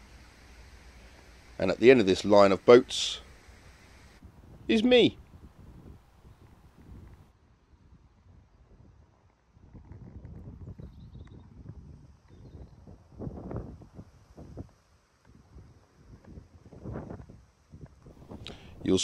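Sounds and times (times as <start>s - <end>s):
wind rumbling on microphone: 4.0s - 19.0s.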